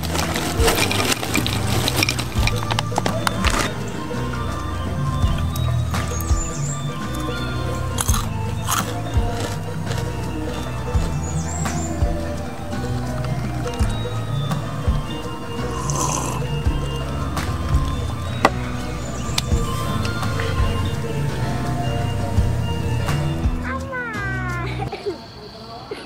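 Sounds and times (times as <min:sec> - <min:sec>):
background music with bass notes: 0:00.0 - 0:24.9
high insect drone: 0:00.0 - 0:26.0.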